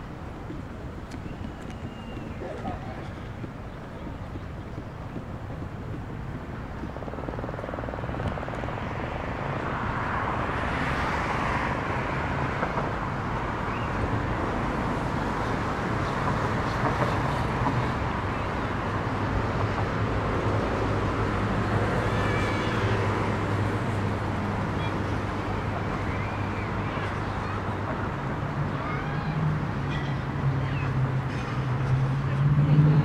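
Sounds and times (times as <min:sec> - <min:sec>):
city street traffic: 0:00.0 - 0:33.0
vehicle passing: 0:30.3 - 0:33.0.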